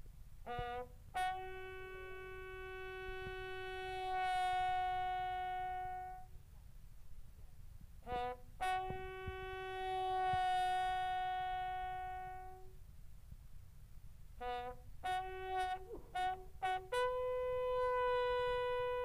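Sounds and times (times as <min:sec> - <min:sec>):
bugle playing funeral call: 0:00.4 - 0:06.3, 0:08.0 - 0:12.8, 0:14.4 - 0:19.0.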